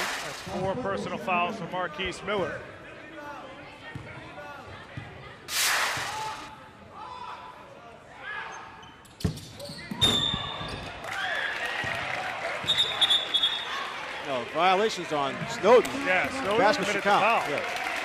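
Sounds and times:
crowd and bench voices: 0.0s - 11.0s, 11.7s - 18.0s.

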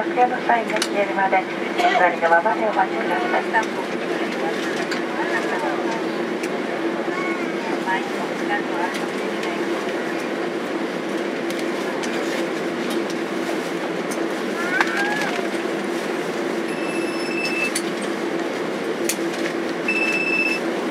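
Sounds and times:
airplane cabin engine hum: 0.0s - 20.9s
high steady beep: 16.7s - 17.7s, 19.9s - 20.6s.

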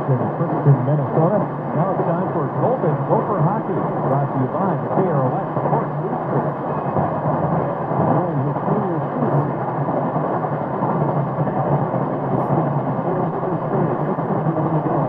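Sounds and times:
faint wavering radio audio: 0.0s - 15.0s
low steady hum: 0.0s - 15.0s
radio static: 0.0s - 15.0s.

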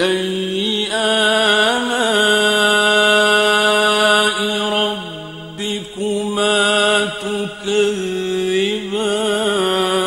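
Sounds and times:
person chanting melodically: 0.0s - 10.0s.

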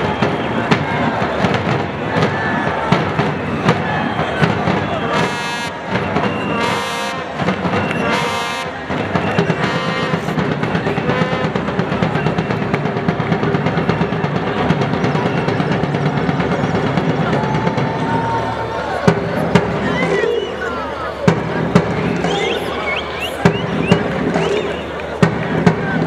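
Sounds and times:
crowd singing: 0.0s - 12.3s, 18.0s - 26.0s
sharp bangs: 0.0s - 26.0s
steady drumming: 0.0s - 26.0s
rising whistle-like notes: 19.8s - 21.1s, 22.0s - 25.2s.

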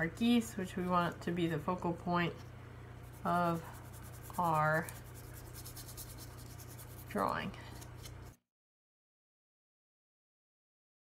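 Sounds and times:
steady low hum: 0.0s - 8.4s
brush scratching on paper: 3.0s - 8.4s.

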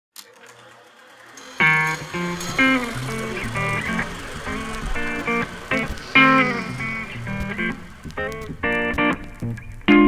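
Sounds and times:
electric guitar note ringing: 1.4s - 10.0s
amplifier hiss and hum: 2.0s - 10.0s.

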